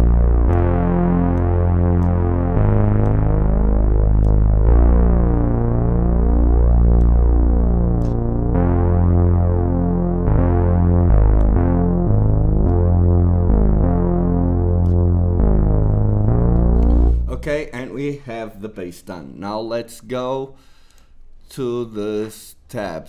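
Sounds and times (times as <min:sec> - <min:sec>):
synthesizer bass line: 0:00.0 - 0:18.1.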